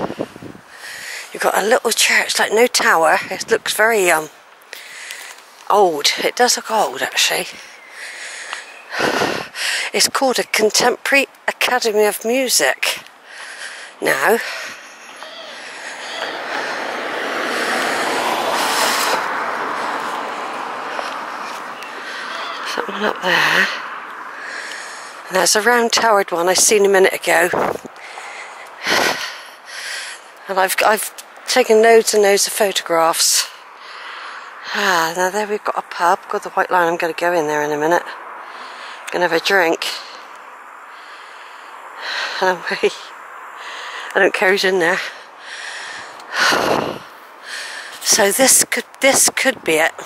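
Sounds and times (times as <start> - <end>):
street ambience hiss: 0.0 - 50.0
car passing: 12.8 - 50.0.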